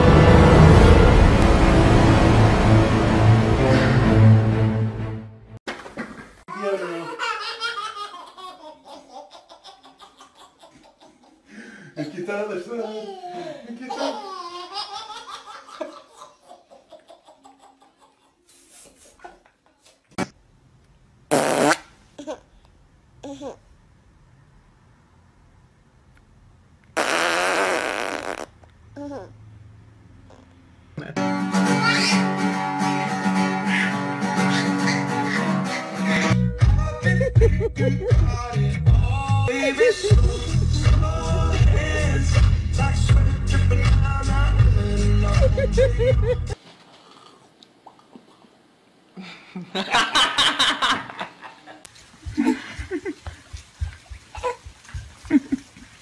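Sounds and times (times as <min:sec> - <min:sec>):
baby giggling: 0:06.5 - 0:11.4, 0:12.8 - 0:18.5, 0:31.7 - 0:32.4, 0:33.6 - 0:36.4, 0:45.3 - 0:46.6
loud long fart: 0:21.3 - 0:21.9, 0:27.0 - 0:28.6.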